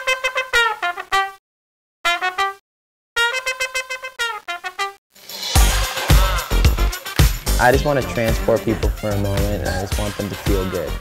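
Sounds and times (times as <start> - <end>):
solo trumpet playing: 0.0 - 1.4, 2.1 - 2.6, 3.2 - 5.0.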